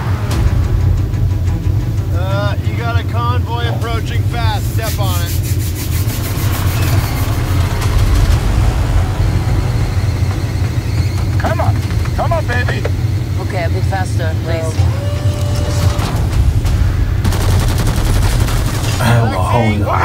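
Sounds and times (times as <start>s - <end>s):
voices: 2.1s - 5.4s, 8.6s - 16.4s, 18.9s - 20.0s.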